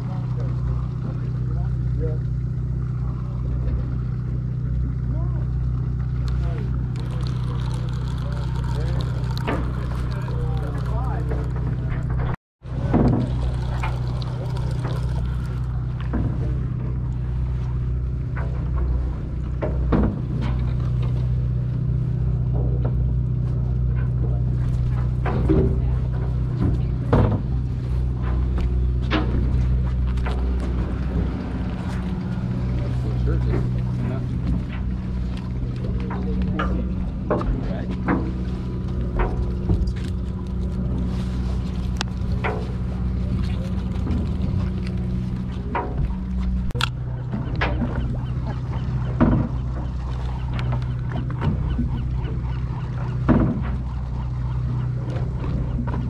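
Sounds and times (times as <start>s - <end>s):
boat engine droning: 0.0s - 56.0s
distant voices: 0.0s - 56.0s
tackle clicks and knocks: 6.3s - 16.6s.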